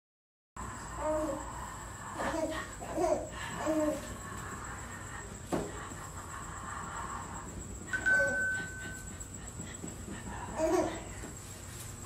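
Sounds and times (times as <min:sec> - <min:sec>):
steady chime tone: 0:07.9 - 0:09.4.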